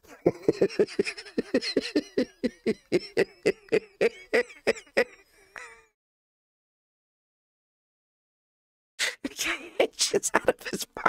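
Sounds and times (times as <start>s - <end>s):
man laughing hard: 0.0s - 5.9s.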